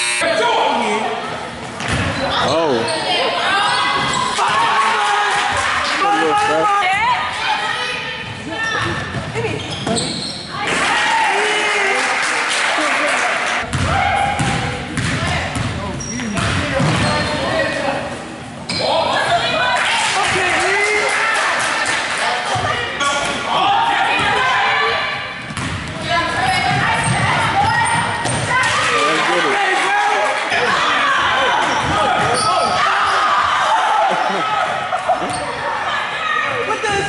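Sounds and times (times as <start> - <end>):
people shouting: 10.5 - 12.1, 23.5 - 25.3.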